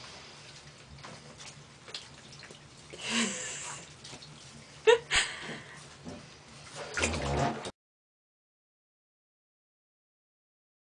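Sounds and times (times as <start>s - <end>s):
bath water dripping and splashing: 0.0s - 7.7s.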